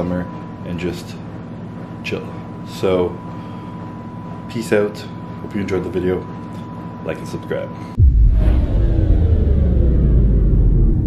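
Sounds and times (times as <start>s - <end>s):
deep bass rumble: 8.0s - 11.0s
faint tones sliding downward: 8.0s - 11.0s.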